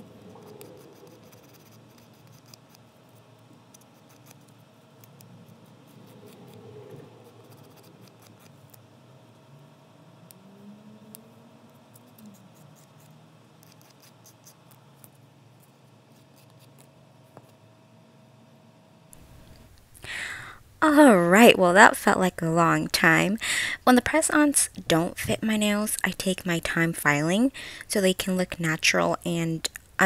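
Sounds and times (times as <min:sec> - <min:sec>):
nail file scratching plastic nail: 0:00.6 - 0:06.5, 0:07.3 - 0:08.8, 0:11.9 - 0:16.9.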